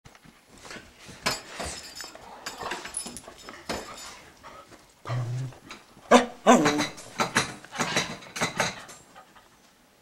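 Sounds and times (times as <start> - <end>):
dog moving on floor: 0.2 - 4.9
small jingle bell tinkling: 1.5 - 4.3
dog whining: 5.1 - 7.0.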